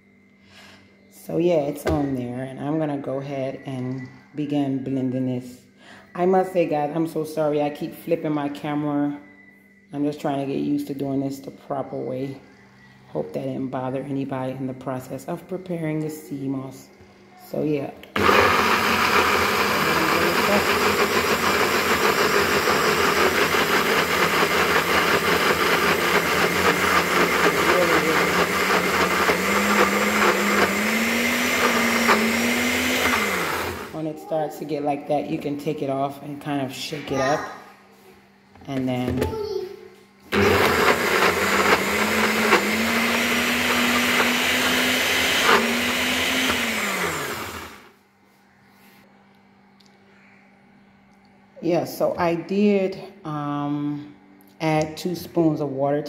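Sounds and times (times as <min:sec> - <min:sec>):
blender running: 0:18.1 - 0:34.0, 0:40.3 - 0:48.0.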